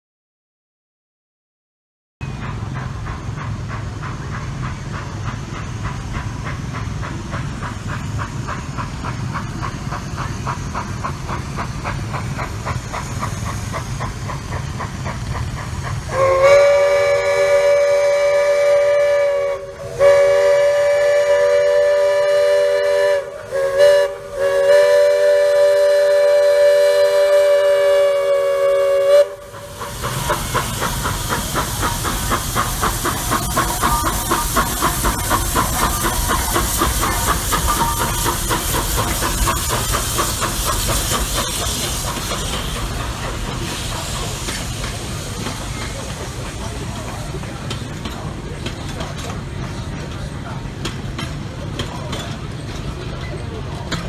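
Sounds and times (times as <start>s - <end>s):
steam engine hissing and chuffing: 2.2s - 54.0s
steam locomotive whistle: 16.1s - 29.8s, 33.3s - 39.3s.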